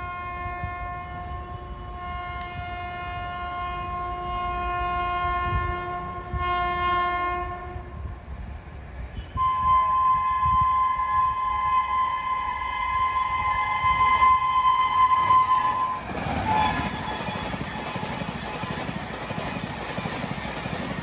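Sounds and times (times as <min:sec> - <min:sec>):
train horn blaring: 0:00.0 - 0:08.0, 0:09.1 - 0:17.3
low rumble of oncoming train: 0:00.0 - 0:21.0.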